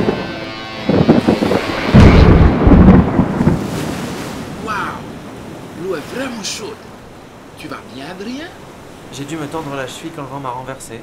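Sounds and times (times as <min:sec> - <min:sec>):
thunder crack and rumble: 0:00.9 - 0:05.7.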